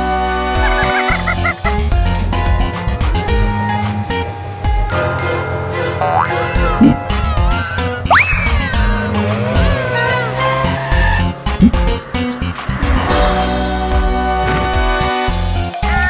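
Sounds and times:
cartoon backing music: 0:00.0 - 0:16.0
loud steep rising sweep: 0:08.0 - 0:15.2.

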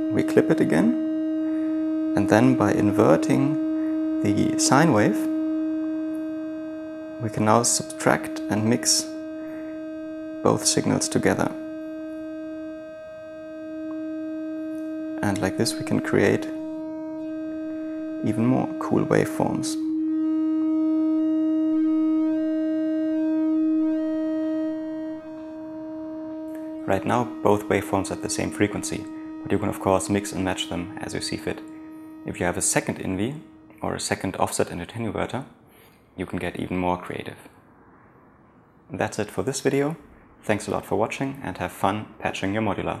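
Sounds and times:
steady synthesizer tone: 0:00.0 - 0:43.0.

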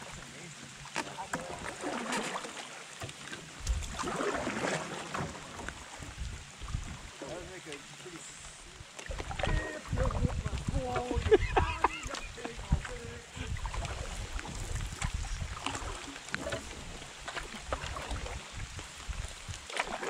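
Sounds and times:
paddle strokes splashing water: 0:00.0 - 0:20.0
rain hissing on water: 0:00.0 - 0:20.0.

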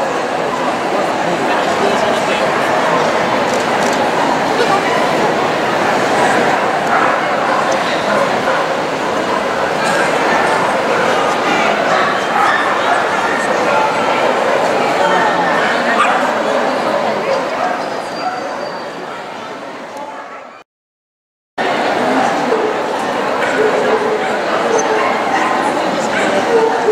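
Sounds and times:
crowd chatter in a hall: 0:00.0 - 0:20.6, 0:21.6 - 0:26.9
dogs barking: 0:06.8 - 0:14.8, 0:15.5 - 0:16.4.

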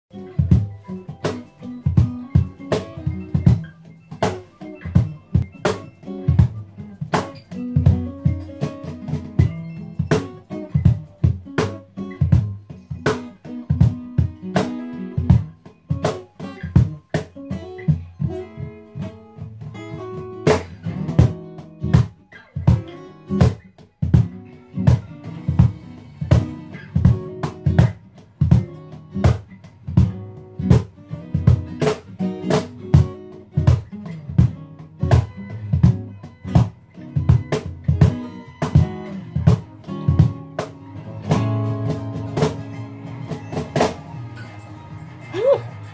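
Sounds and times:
acoustic guitar chords: 0:00.1 - 0:45.9
cajon groove: 0:00.1 - 0:45.9.

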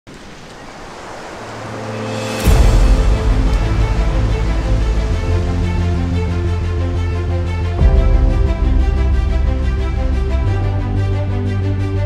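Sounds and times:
rushing noise like surf: 0:00.1 - 0:10.8
low steady drone: 0:00.9 - 0:12.0.

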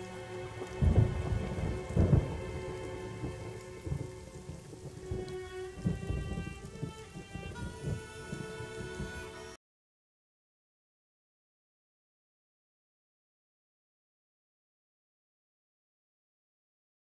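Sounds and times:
steady rain: 0:00.0 - 0:09.6
thunder rumbles: 0:00.0 - 0:09.6.

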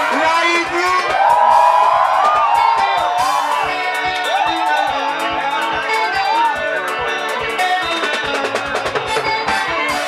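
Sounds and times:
crowd cheering: 0:00.0 - 0:10.0
electric guitar melody: 0:00.0 - 0:10.0
live band music: 0:00.0 - 0:10.0.

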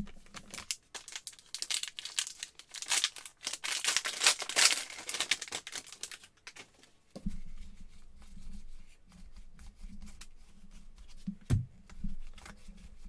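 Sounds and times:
wrapper crinkling and tearing: 0:00.0 - 0:06.8.

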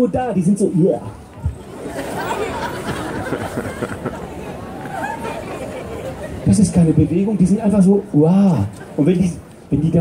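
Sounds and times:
audience chatter: 0:01.0 - 0:10.0.

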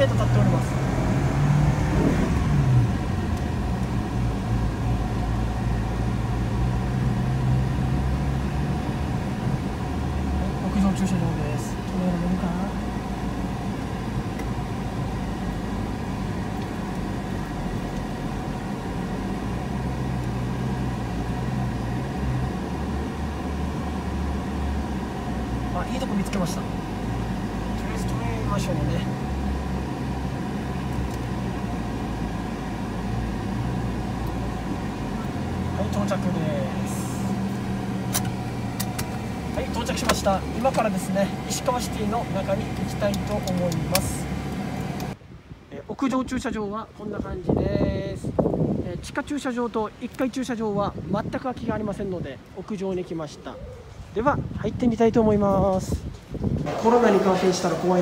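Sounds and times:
car engine rumble in cabin: 0:00.0 - 0:45.6.

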